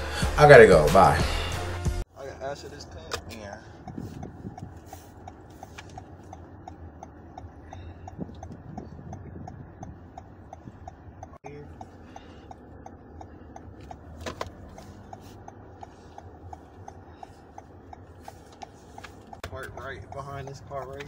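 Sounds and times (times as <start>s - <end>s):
low car engine hum: 0.0s - 21.0s
turn signal ticking: 0.4s - 21.0s.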